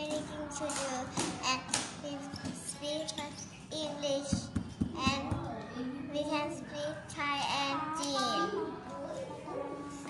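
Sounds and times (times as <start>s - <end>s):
girl speaking sing-song: 0.0s - 4.4s.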